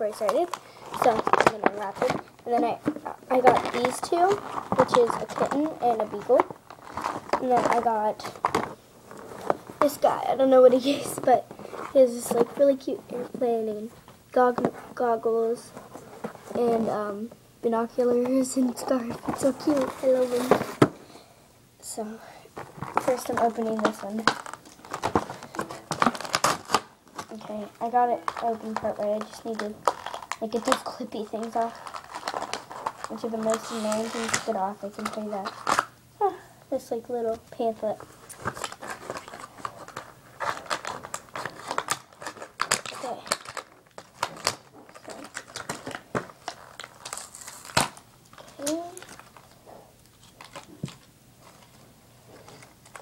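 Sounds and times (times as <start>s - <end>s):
plastic packaging crinkling: 0.0s - 12.8s, 17.8s - 20.9s, 22.6s - 36.0s, 37.8s - 53.0s.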